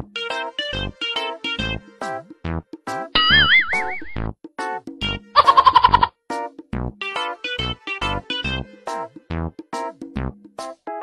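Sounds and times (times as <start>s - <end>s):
music with pitched notes and beats: 3.0s - 4.3s, 5.0s - 8.7s
springy wobbling sound effect: 3.2s - 4.2s, 5.4s - 6.1s.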